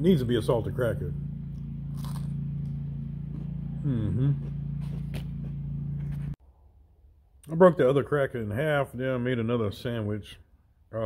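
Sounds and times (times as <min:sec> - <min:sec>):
low mechanical hum: 0:00.0 - 0:06.4
crunch of biting cracker: 0:01.9 - 0:02.4
person humming mm-hmm: 0:03.7 - 0:04.6.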